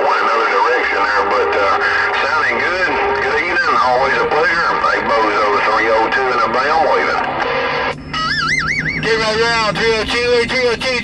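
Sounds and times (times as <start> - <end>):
voice over radio: 0.0 - 7.4, 9.0 - 11.0
low hum: 0.0 - 11.0
electronic warbling tone: 1.7 - 10.8.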